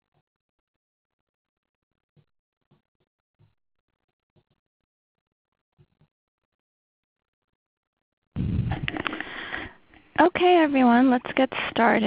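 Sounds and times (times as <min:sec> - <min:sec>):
person breathing into microphone: 0:08.4 - 0:10.1.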